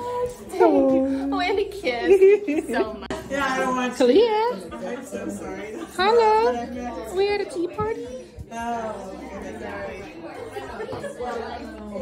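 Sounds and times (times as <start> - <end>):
people chattering: 0.0 - 12.0.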